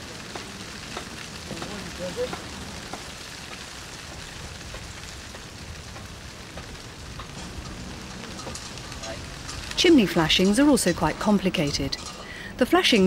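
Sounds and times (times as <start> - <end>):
steady background hiss: 0.0 - 13.0.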